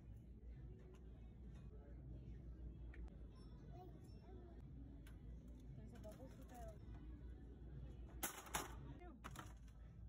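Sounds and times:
toys clattering into plastic cart: 0:08.2 - 0:09.7.

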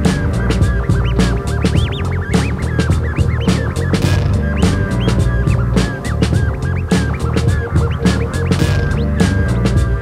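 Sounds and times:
electronic hip-hop beat: 0:00.0 - 0:10.0
record scratching: 0:00.0 - 0:10.0.

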